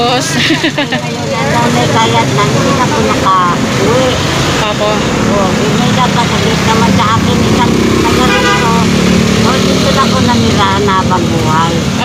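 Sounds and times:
vehicle engine running: 0.0s - 12.0s
woman talking: 0.0s - 12.0s.

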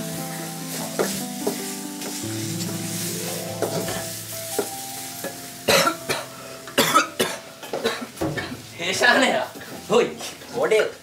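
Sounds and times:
food sizzling: 0.0s - 11.0s
music with held notes: 0.0s - 11.0s
person coughing: 5.7s - 8.6s.

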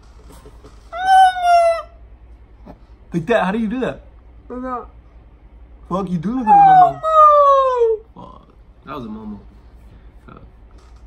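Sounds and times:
person's high-pitched squeal: 6.4s - 8.0s.

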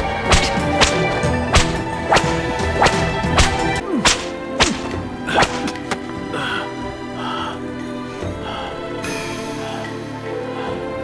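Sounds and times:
whip cracks: 0.0s - 5.9s
background music: 0.0s - 11.0s.

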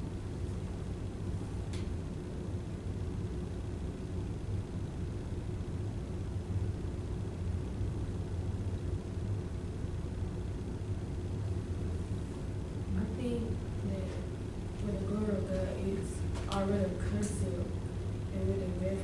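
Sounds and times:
low room rumble: 0.0s - 19.0s.

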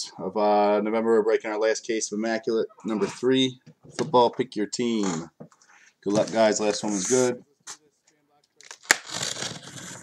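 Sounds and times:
box cutter slitting packing tape: 8.7s - 10.0s.

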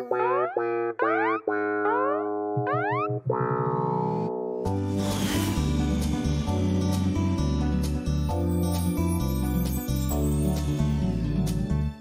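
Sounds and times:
cartoon music with boing glides: 0.0s - 9.0s
cymbal crash: 4.7s - 8.8s.

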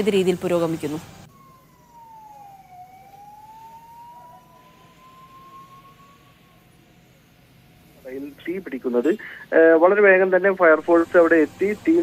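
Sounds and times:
faint emergency siren wailing: 0.8s - 8.8s.

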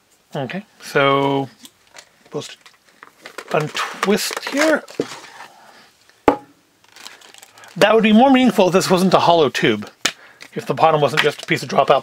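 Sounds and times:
plastic capsule clicking apart: 1.6s - 5.0s
plastic knock on tabletop: 6.3s - 6.5s.

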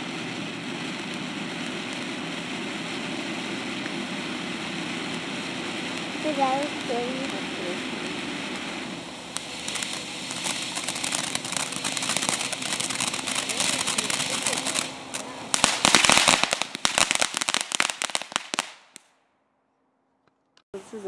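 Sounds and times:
fountain firework hissing: 0.0s - 19.0s
firework crackling pops: 0.0s - 19.2s.

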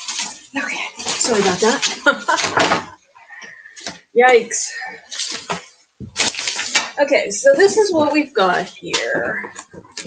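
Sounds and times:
objects handled and clattering: 0.0s - 4.1s, 7.6s - 10.0s.

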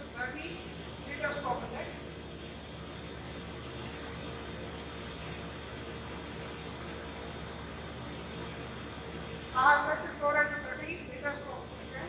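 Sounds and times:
water pump humming: 0.0s - 12.0s.

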